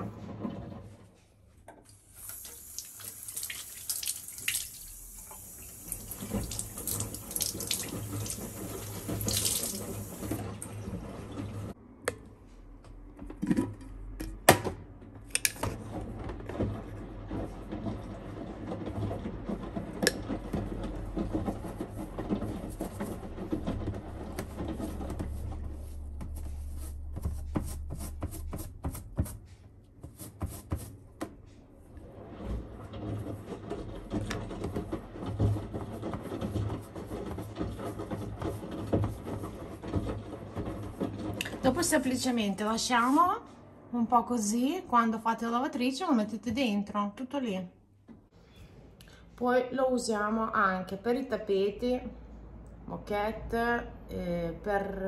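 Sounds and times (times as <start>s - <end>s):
tap water running: 1.8s - 11.8s.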